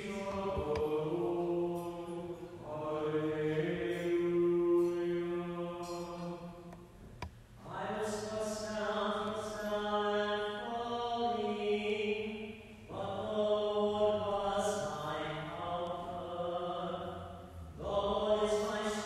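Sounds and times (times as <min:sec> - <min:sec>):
liturgical chant on held notes: 0:00.0 - 0:06.9, 0:07.6 - 0:19.0.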